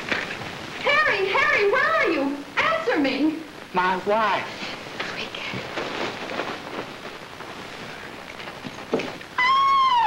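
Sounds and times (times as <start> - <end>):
film soundtrack hiss and crackle: 0.0 - 10.0.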